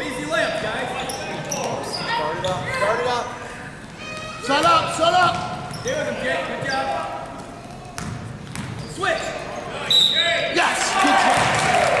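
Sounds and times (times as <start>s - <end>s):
sneaker squeaks: 0.4s - 10.4s
basketball bouncing on hardwood: 8.0s - 8.8s.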